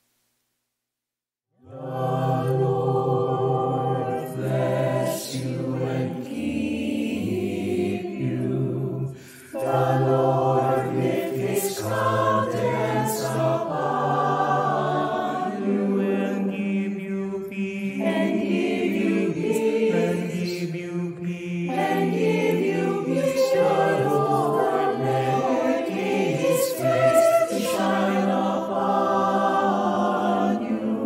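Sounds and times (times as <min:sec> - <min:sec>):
mixed choir singing slow chords: 0:01.6 - 0:31.0.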